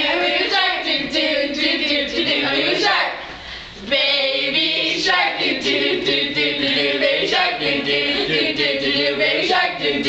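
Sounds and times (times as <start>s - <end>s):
group singing without instruments: 0.0s - 10.0s.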